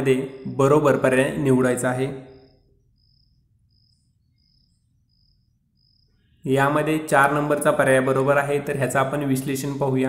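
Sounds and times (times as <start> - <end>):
faint cricket chirping: 0.0 - 10.0.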